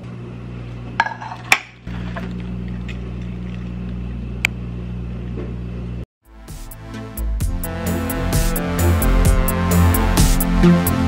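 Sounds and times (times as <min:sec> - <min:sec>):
microwave oven humming: 0:00.0 - 0:06.0.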